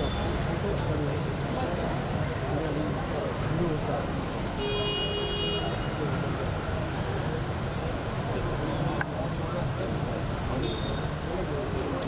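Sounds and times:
outdoor background noise: 0:00.0 - 0:12.0.

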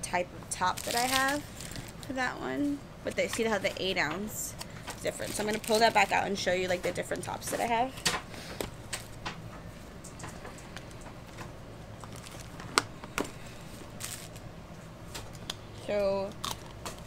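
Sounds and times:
bag rustling: 0:13.8 - 0:14.4.

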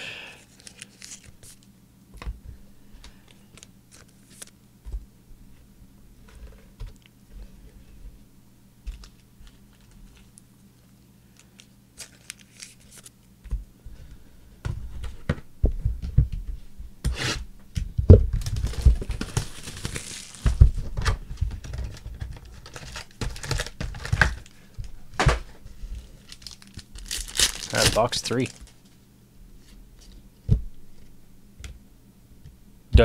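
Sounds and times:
foil packs rustling: 0:00.5 - 0:01.6, 0:11.3 - 0:13.1, 0:18.3 - 0:28.9
plastic shrink-wrap tearing: 0:00.5 - 0:01.6, 0:11.4 - 0:13.1, 0:18.4 - 0:20.6, 0:21.7 - 0:24.5, 0:26.0 - 0:28.8.

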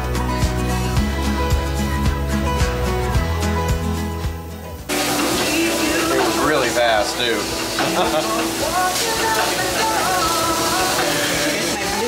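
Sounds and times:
music: 0:00.0 - 0:12.0
steady hiss: 0:04.8 - 0:12.0
people's voices: 0:04.9 - 0:12.0.

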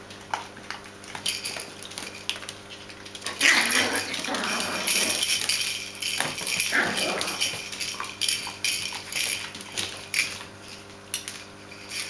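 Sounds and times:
puppies growling and scuffling: 0:00.0 - 0:12.0.

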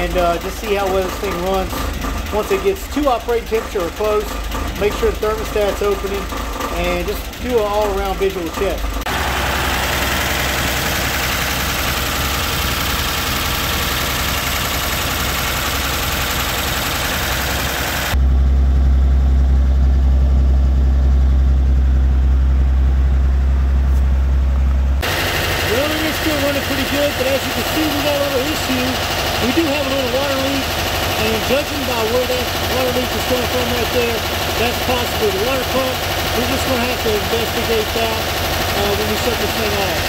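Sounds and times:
car engine idling: 0:00.0 - 0:40.0
deep exhaust rumble: 0:00.0 - 0:40.0.

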